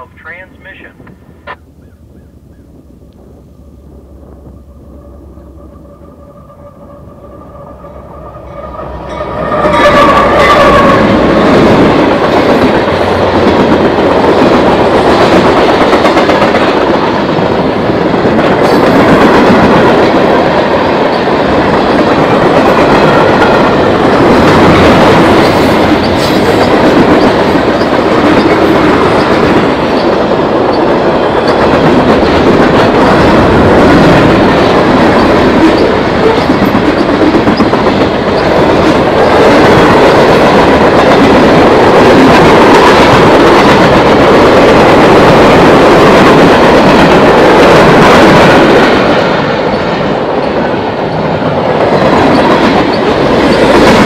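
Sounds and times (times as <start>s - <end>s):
freight train passing: 0.0s - 54.0s
wheels clacking over rail joints: 8.5s - 54.0s.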